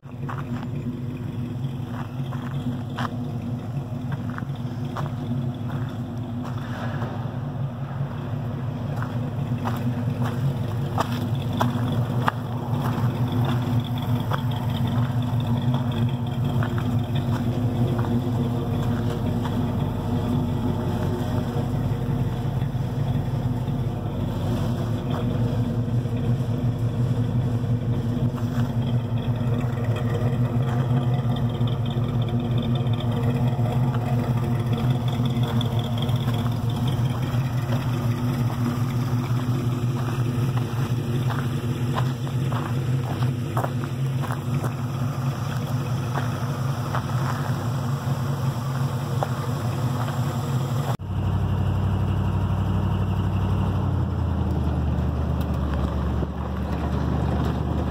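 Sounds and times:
truck engine idling: 0.0s - 57.9s.

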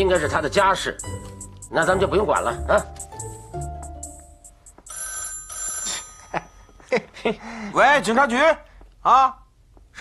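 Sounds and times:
telephone bell ringing: 4.9s - 7.0s.

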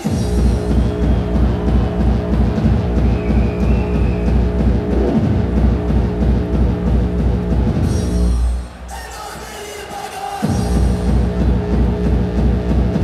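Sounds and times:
distorted pounding kick drum: 0.0s - 8.6s, 10.4s - 13.0s
hardcore electronic dance music: 0.0s - 13.0s.

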